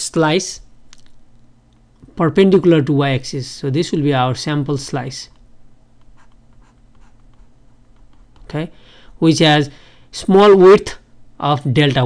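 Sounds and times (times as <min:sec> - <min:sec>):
low steady hum: 0:00.0 - 0:12.0
stylus scratching on tablet: 0:06.0 - 0:08.5.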